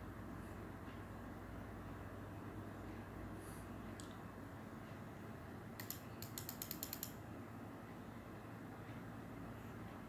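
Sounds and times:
mouse scroll wheel clicks: 0:05.8 - 0:07.2.

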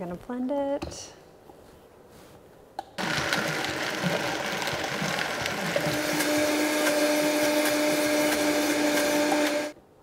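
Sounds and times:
blender motor running: 0:03.0 - 0:09.8.

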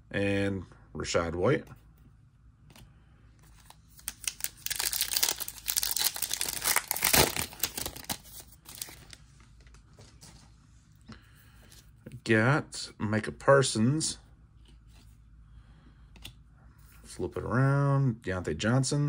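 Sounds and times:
foil wrapper tearing and crinkling: 0:03.9 - 0:09.2.

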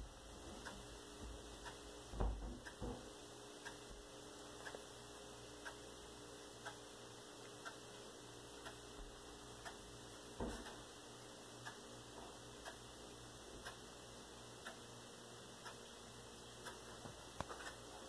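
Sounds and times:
faint steady ticking: 0:00.0 - 0:18.0
room hum: 0:00.0 - 0:18.0.

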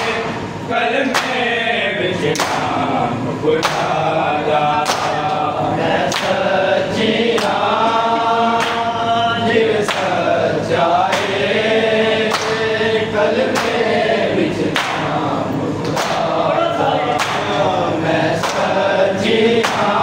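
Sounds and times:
men chanting a lament: 0:00.0 - 0:20.0.

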